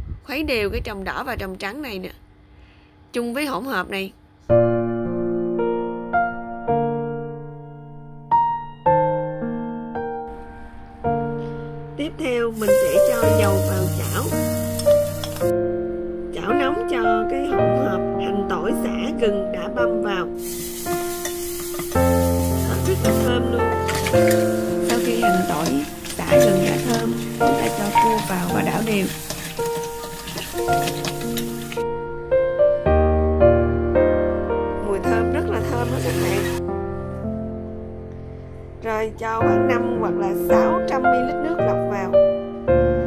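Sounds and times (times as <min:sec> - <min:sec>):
keyboard music: 0:04.6 - 0:43.0
food sizzling in hot oil: 0:12.5 - 0:15.5, 0:20.3 - 0:31.8, 0:35.5 - 0:36.6.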